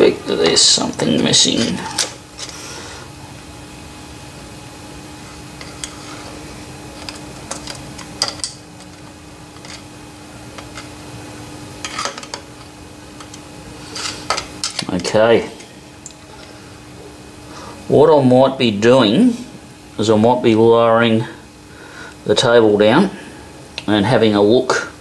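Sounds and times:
steady low hum: 0.0 - 25.0
screwdriver scraping metal: 7.0 - 9.9.

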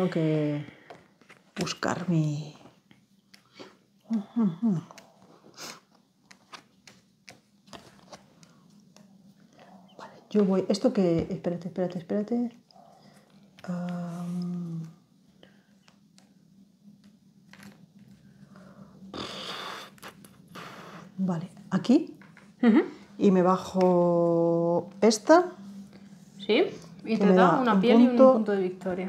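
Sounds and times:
person exhaling sharply through nose: 19.1 - 21.1.

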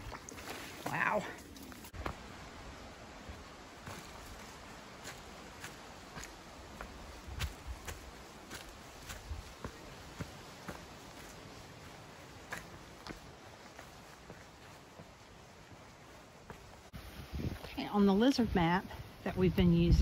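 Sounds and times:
footsteps on rocky dirt trail: 1.9 - 2.5, 3.2 - 19.1.

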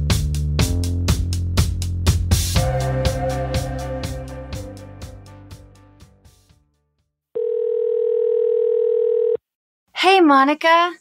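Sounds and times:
music sting: 2.5 - 6.5
telephone ring tone: 7.4 - 9.4.

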